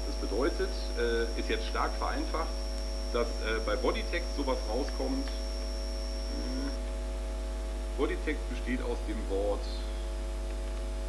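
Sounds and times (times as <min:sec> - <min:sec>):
voice hesitation sound: 0:00.0 - 0:05.5, 0:06.3 - 0:06.8, 0:08.0 - 0:10.0
electrical mains hum: 0:00.0 - 0:11.0
faint high whine: 0:00.0 - 0:11.0.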